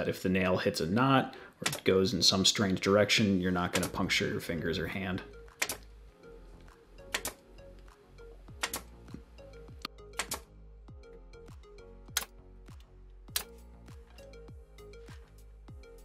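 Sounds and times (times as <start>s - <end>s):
background music with steady beat: 0.0s - 16.0s.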